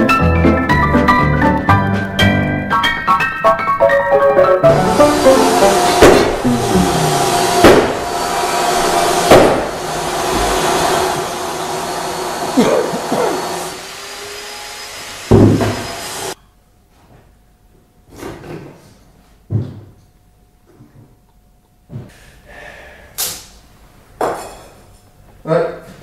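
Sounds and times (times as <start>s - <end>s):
descending piano notes: 2.6s - 12.6s
loud crashes with ringing tones: 7.4s - 9.9s.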